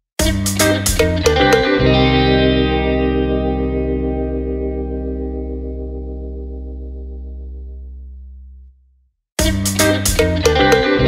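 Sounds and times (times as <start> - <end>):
guitar chord ringing: 1.2 - 8.0.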